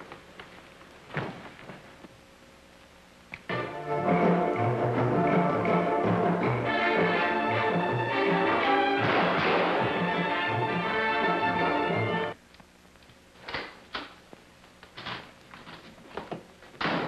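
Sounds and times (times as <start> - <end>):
orchestral film music: 3.5 - 12.4.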